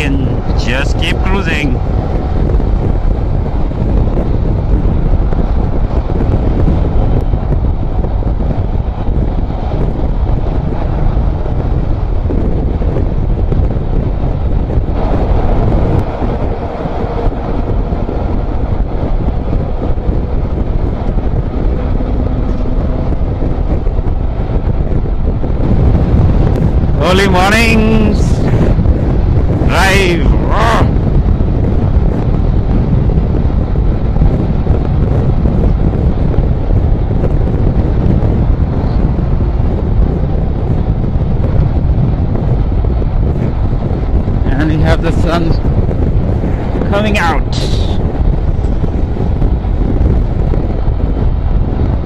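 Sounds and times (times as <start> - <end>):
motorcycle running: 0.0 - 52.0
road noise: 0.0 - 52.0
wind buffeting microphone: 0.0 - 52.0.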